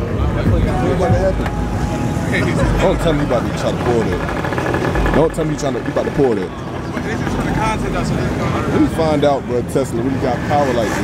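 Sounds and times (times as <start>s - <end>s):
crowd talking: 0.0s - 11.0s.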